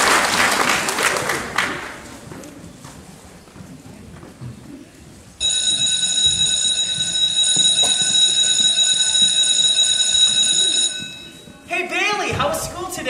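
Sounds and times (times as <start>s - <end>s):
electric bell ringing: 5.4s - 11.6s.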